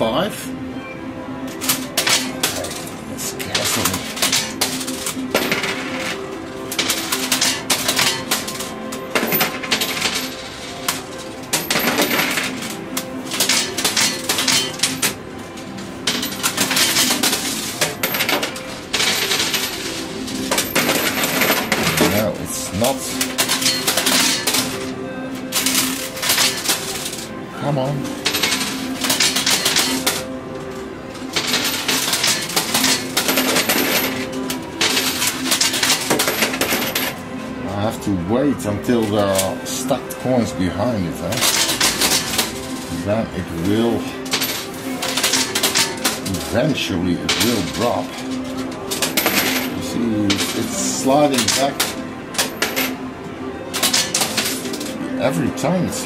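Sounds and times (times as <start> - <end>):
coins clinking in coin pusher: 1.4 - 56.0.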